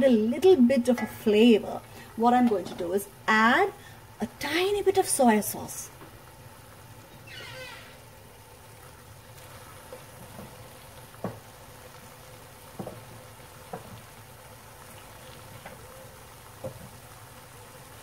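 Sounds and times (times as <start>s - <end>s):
vegetables sizzling in a pan: 0.0s - 18.0s.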